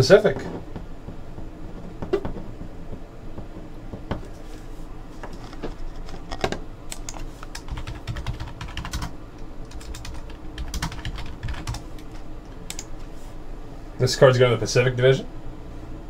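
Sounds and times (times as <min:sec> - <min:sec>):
typing on computer keyboard: 0:06.0 - 0:12.9.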